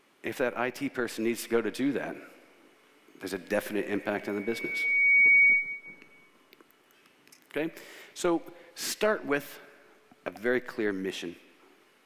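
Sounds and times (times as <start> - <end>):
high whistle-like tone: 3.7 - 6.4.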